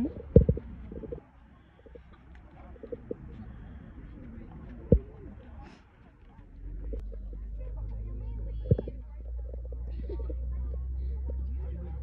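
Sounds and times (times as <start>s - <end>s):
steady low rumble: 0.0s - 5.6s, 6.4s - 12.0s.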